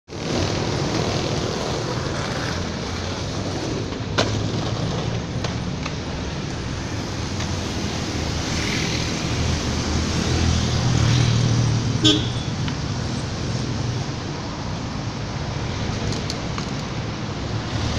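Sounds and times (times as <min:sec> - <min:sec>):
road traffic passing: 0:00.1 - 0:17.9.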